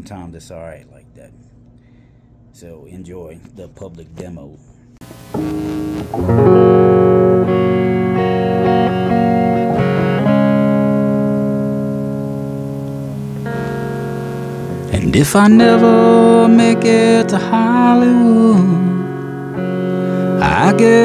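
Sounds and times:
electric guitar strummed chords: 5.0 - 21.0.

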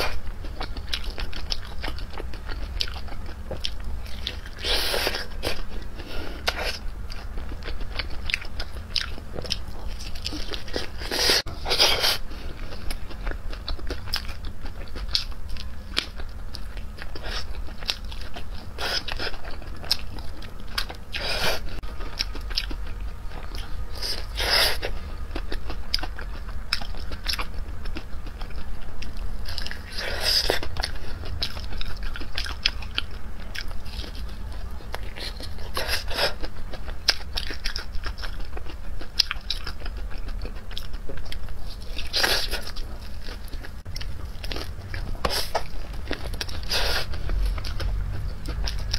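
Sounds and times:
crunching fried chicken: 0.0 - 48.9
steady low hum: 0.0 - 48.9
wet chewing: 0.0 - 48.9.

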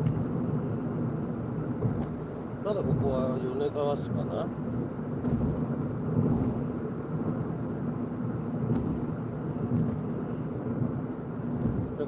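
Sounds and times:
constant low hum: 0.0 - 12.0
road and engine rumble: 0.0 - 12.0.

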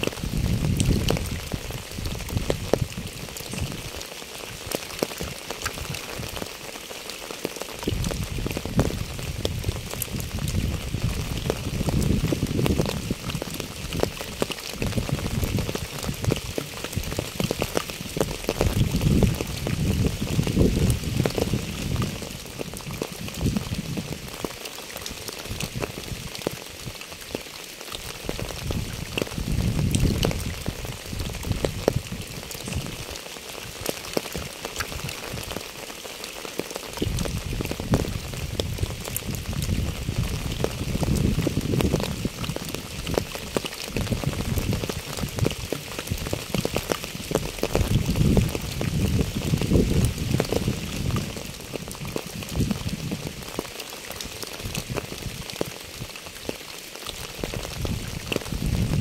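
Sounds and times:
rain on wet asphalt: 0.0 - 59.0.

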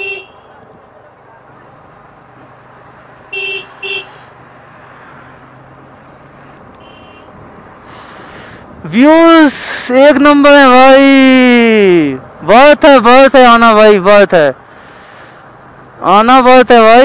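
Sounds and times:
road noise: 0.0 - 17.0.

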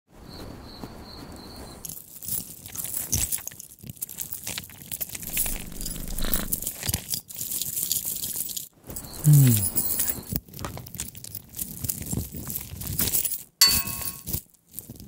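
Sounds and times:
crackling and crunching clicks: 2.7 - 7.8.

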